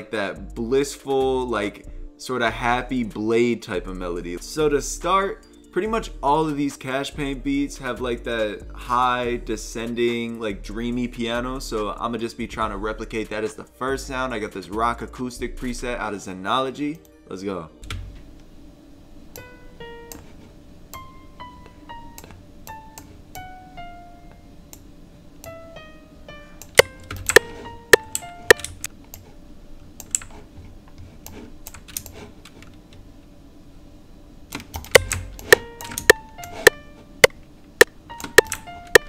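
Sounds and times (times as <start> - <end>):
sharp computer clicks: 26.6 - 29.2, 30.0 - 30.3, 34.5 - 39.0
single piano notes: 34.9 - 39.0.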